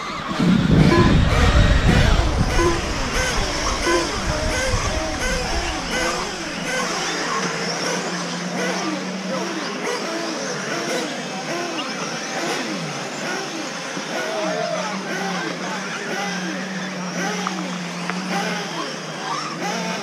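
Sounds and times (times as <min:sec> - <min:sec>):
electric motors whining: 0:00.0 - 0:20.0.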